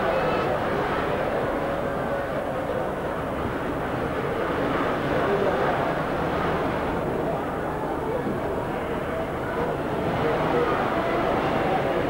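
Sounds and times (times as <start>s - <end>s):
crowd babble in large hall: 0.0s - 12.0s.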